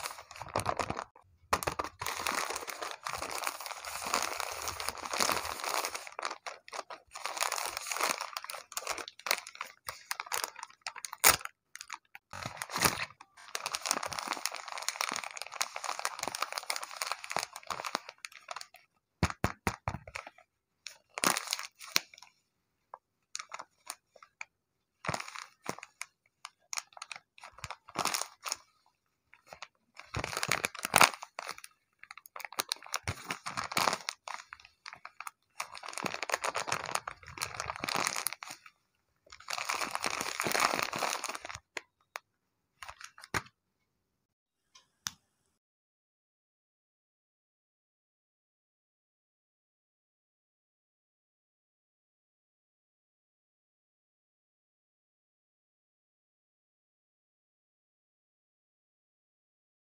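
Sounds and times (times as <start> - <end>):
paper crinkling and crackling: 0.0 - 22.4, 23.3 - 41.9, 42.8 - 43.5.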